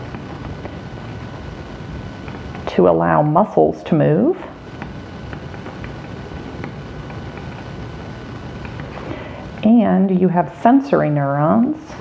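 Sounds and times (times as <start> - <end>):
background rumble and hiss: 0.0 - 12.0
faint high whine: 0.0 - 12.0.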